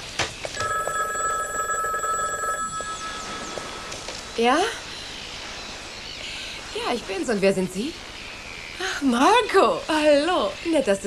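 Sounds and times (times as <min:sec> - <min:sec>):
desk telephone ringing: 0:00.6 - 0:04.2.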